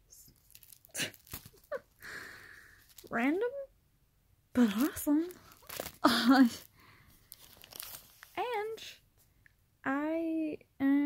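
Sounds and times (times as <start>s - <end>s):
plastic packaging crinkling: 0.2s - 3.2s, 4.6s - 8.4s.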